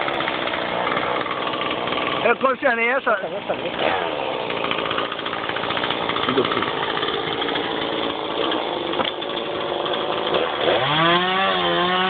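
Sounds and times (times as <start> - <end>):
chainsaw engine buzzing: 0.0 - 12.0.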